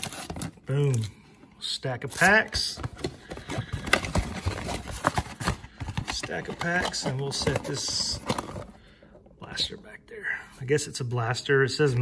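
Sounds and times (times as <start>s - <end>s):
taps and knocks of card packs: 2.5s - 8.8s.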